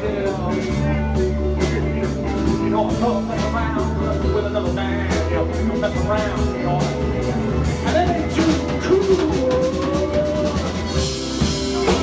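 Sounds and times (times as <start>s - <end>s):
live rock band playing: 0.0s - 12.0s
person singing: 0.0s - 12.0s.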